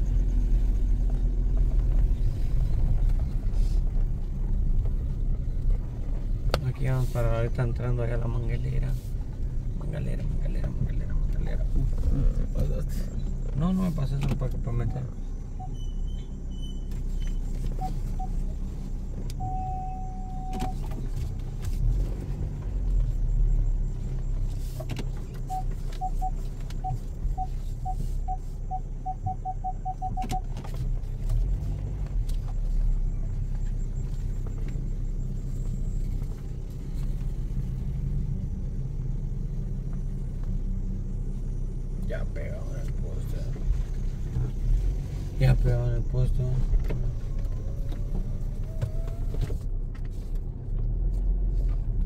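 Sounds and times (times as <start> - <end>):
car engine and tyre rumble: 0.0 - 52.0
electronic beeper beeping: 19.4 - 20.8, 25.5 - 30.4.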